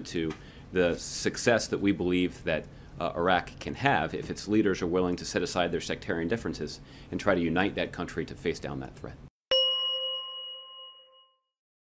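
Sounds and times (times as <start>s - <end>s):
bell-like chime: 9.5s - 11.6s.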